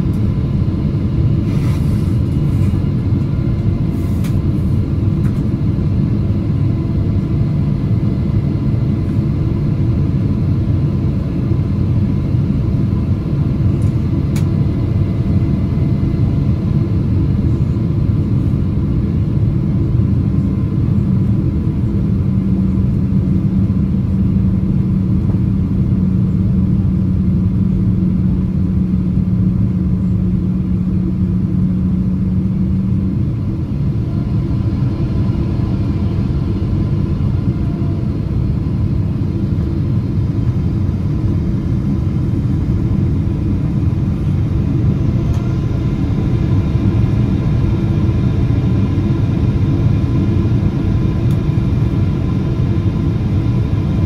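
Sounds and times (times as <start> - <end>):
airplane cabin rumble: 0.0 - 54.0
low hum: 19.9 - 54.0.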